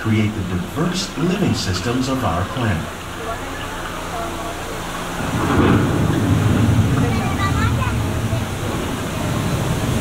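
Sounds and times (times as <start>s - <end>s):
rain-like hiss: 0.0s - 10.0s
deep rolling thunder rumble: 5.1s - 10.0s.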